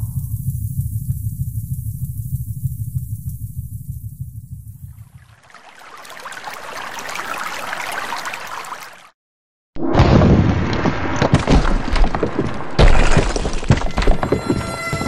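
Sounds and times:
deep fluttering rumble: 0:00.0 - 0:05.3.

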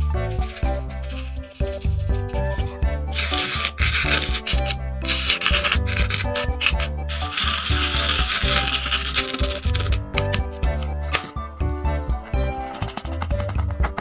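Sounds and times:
background music: 0:00.0 - 0:14.0
spoon scraping sand: 0:00.1 - 0:10.0, 0:12.5 - 0:13.6.

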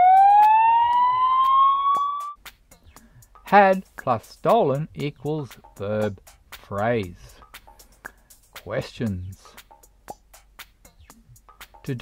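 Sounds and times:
rising siren-like cartoon tone: 0:00.0 - 0:02.4.

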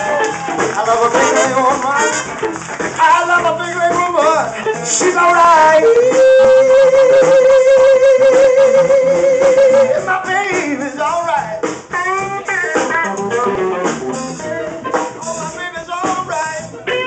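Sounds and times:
electric blues band playing: 0:00.0 - 0:17.0
electric guitar licks: 0:00.0 - 0:17.0.

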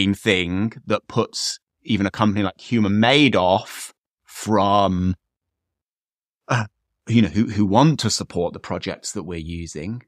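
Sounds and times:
man speaking: 0:00.0 - 0:05.3, 0:06.5 - 0:10.0.

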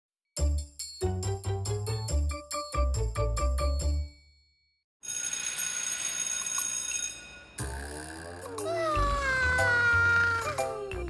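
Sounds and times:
electric bell ringing: 0:05.0 - 0:07.6.

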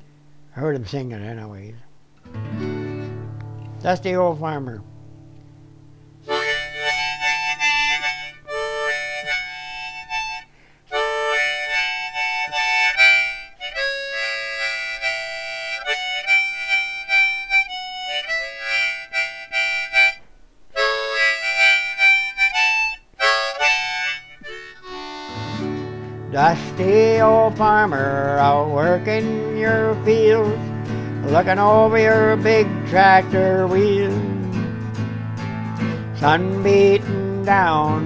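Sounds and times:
acoustic guitar accompaniment: 0:01.9 - 0:38.0
harmonica playing country melody: 0:02.3 - 0:38.0.

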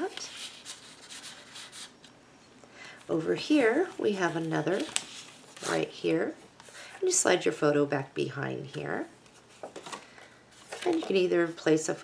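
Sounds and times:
paper rustling on paper: 0:00.0 - 0:02.0, 0:03.1 - 0:05.9, 0:09.2 - 0:11.3.

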